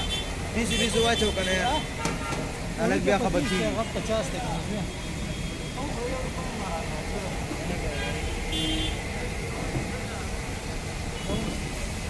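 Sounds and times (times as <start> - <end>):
low rumble of traffic: 0.0 - 12.0
people talking indistinctly: 0.5 - 10.7.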